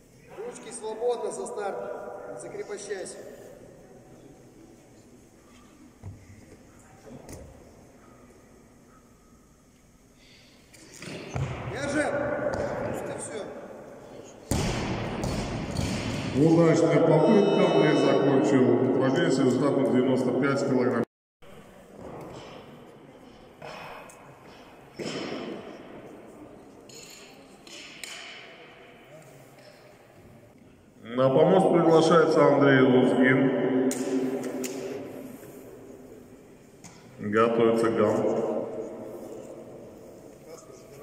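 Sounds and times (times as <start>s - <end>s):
knocks echoing in a hall: 0.0s - 9.6s, 10.5s - 41.0s
indistinct voices: 16.6s - 20.2s.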